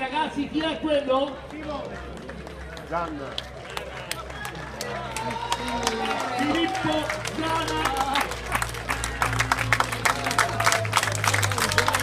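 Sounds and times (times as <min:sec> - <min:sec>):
crowd cheering: 0:01.2 - 0:12.0
hand claps: 0:01.3 - 0:12.0.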